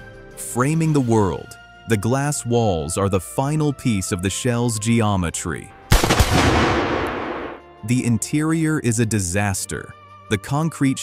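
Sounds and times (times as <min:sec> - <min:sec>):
sharp bang echoing in concrete hall: 0:05.9 - 0:07.6.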